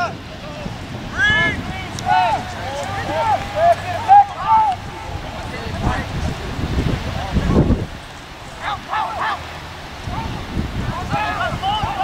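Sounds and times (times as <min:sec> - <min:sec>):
wind noise on microphone: 0:00.0 - 0:12.0.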